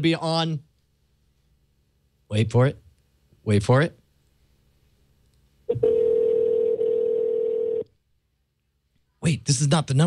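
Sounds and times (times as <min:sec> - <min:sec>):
phone ringing tone: 0:05.7 - 0:07.9.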